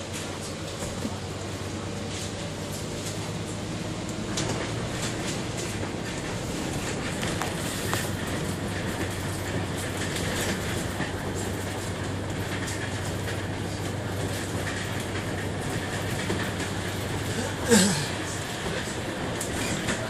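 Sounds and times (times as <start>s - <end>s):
bus engine drone: 0.0s - 20.0s
road and tyre noise: 0.0s - 20.0s.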